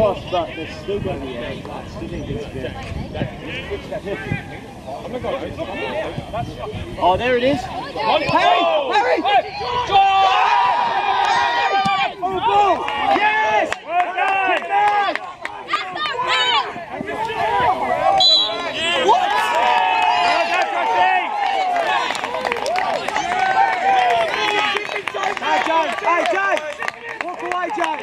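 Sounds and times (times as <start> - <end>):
voices shouting: 7.6 - 26.6.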